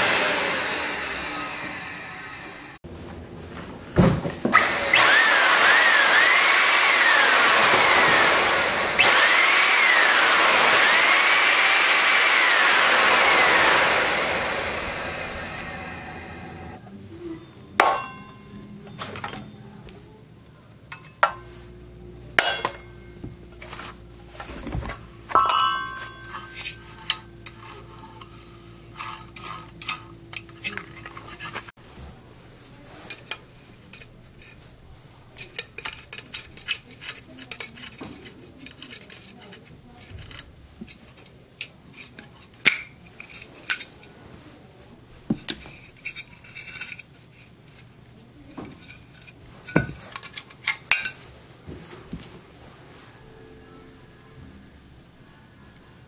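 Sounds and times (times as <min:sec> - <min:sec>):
metal clank with brief ring: 0:17.4 - 0:19.6, 0:22.4 - 0:23.3, 0:24.6 - 0:27.0
metal parts scraping: 0:22.4 - 0:31.7, 0:45.4 - 0:47.9
sharp metallic clinks: 0:25.2 - 0:26.9
metal parts clinking and knocking: 0:45.3 - 0:47.2.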